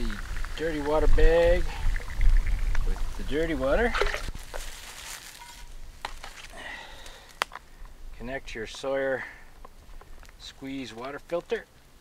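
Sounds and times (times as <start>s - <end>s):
rustling of nylon bag: 4.2s - 7.4s.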